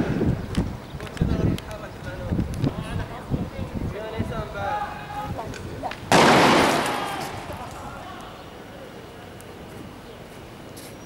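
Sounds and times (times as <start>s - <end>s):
loud echoing bang: 6.1s - 7.7s.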